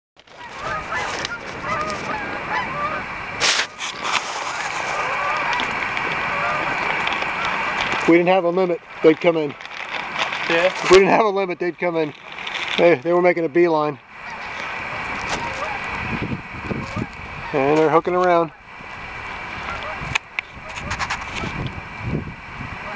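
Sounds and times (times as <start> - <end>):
geese honking in flight: 0.2 - 13.2, 13.9 - 21.8
brief rush of noise: 0.5 - 8.1.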